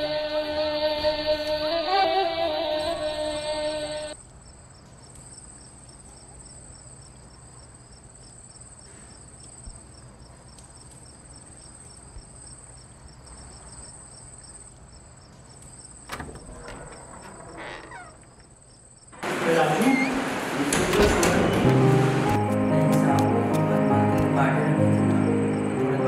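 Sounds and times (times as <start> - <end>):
insect chirping trill: 1.6 - 19.2
background music: 20.8 - 26.0.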